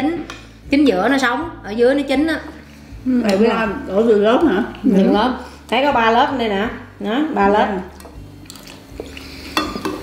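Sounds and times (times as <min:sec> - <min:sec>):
cutlery clinking on ceramic bowls: 0:09.0 - 0:10.0.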